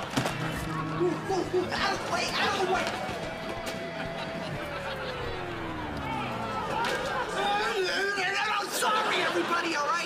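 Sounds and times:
party music: 0.3s - 7.7s.

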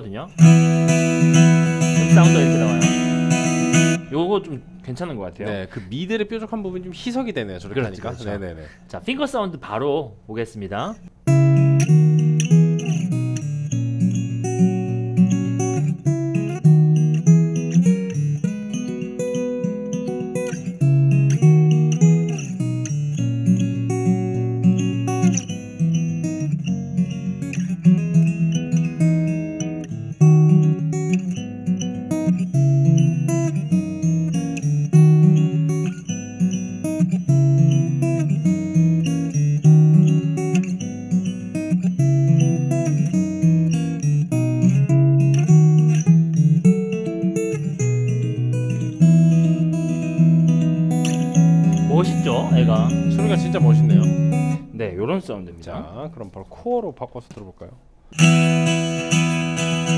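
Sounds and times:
fingerstyle acoustic guitar: 0.3s - 4.8s, 11.2s - 56.6s, 58.0s - 59.9s.

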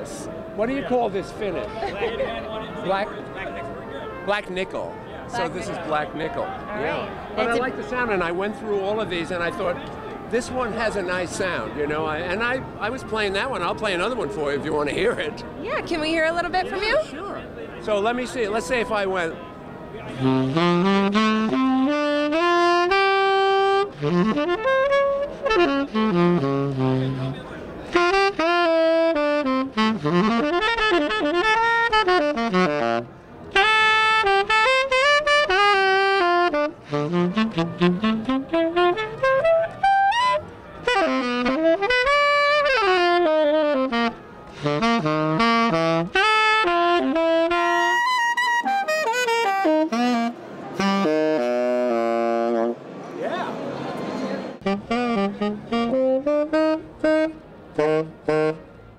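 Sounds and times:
tenor saxophone jazz runs: 20.0s - 52.9s, 54.6s - 58.9s.

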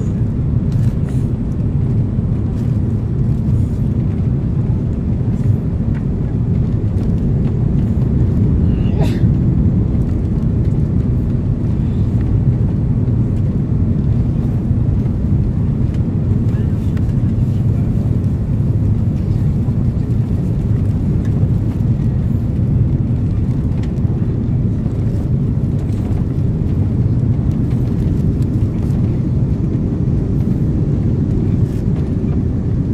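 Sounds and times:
airflow over flaps: 0.0s - 32.9s
airplane cabin engine rumble: 0.0s - 32.9s.

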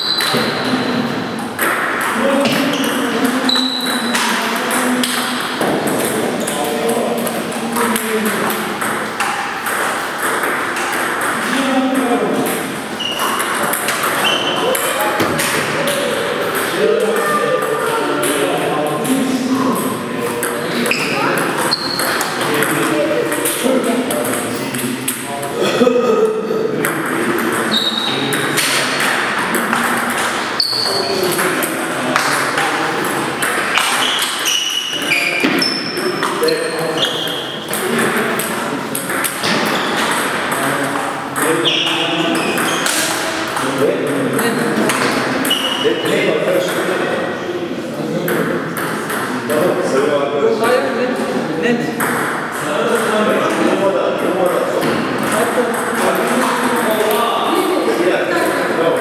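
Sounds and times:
voices in a hall: 0.0s - 59.0s
ball bouncing on table: 1.6s - 18.4s, 19.6s - 25.3s, 37.0s - 45.8s, 52.0s - 53.6s
ball clicking off paddles: 37.0s - 45.8s.

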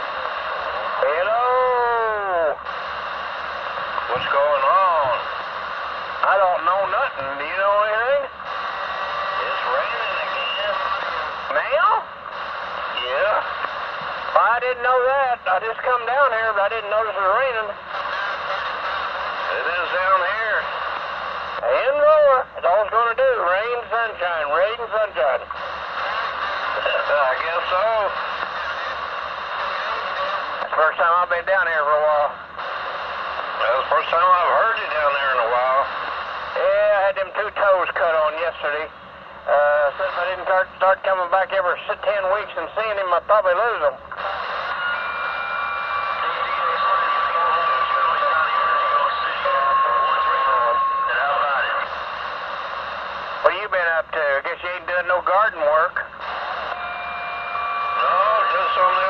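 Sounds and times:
radio static hiss: 0.0s - 59.0s
voices over radio: 0.0s - 59.0s
high whistling tones: 56.7s - 58.2s.

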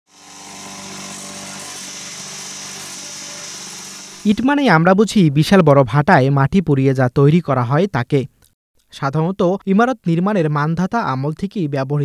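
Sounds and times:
vibrator motor humming: 0.1s - 4.4s.

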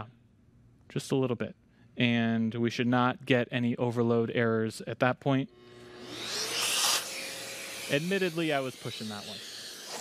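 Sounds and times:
router motor whine: 5.5s - 10.0s.

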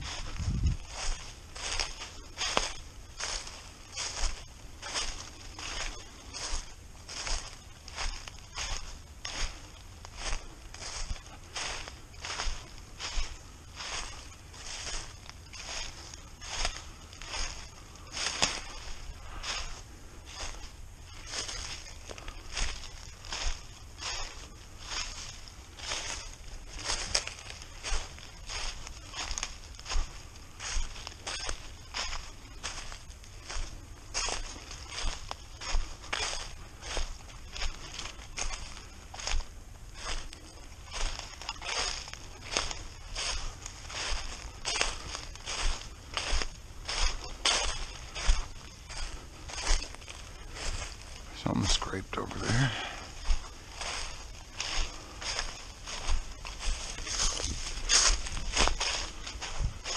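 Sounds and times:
footsteps crunching dry leaves: 0.0s - 59.9s.

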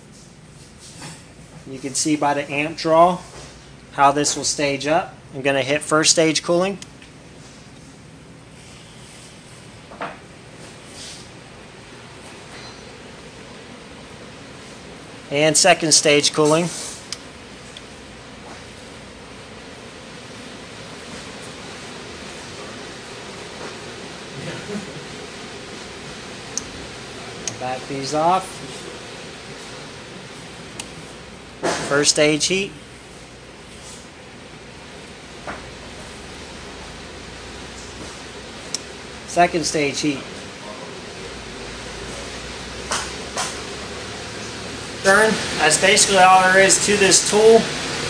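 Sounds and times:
blower motor with air whoosh: 7.2s - 48.0s
hiss of air: 16.4s - 17.2s.

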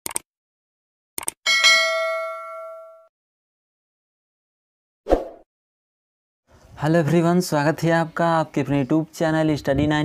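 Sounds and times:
notification bell ding: 1.5s - 3.1s.

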